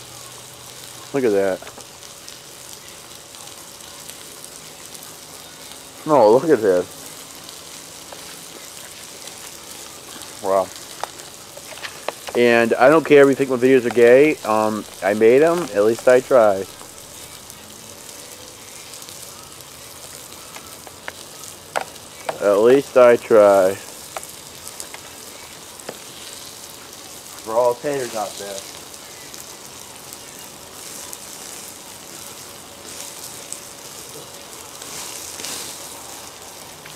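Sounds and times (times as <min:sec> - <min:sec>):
fire sizzling and crackling: 0:00.0 - 0:36.9.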